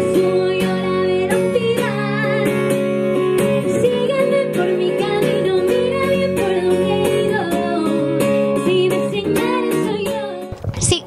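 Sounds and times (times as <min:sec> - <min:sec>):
woman singing: 0:00.0 - 0:10.6
acoustic guitar: 0:00.0 - 0:11.0.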